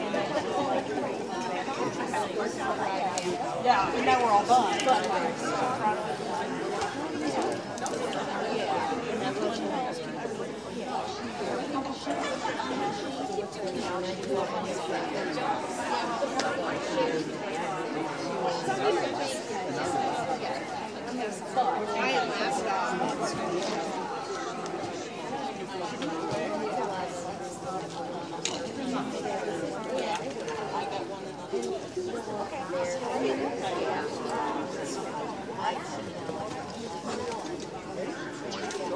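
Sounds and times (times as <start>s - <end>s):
background chatter: 0.0s - 38.9s.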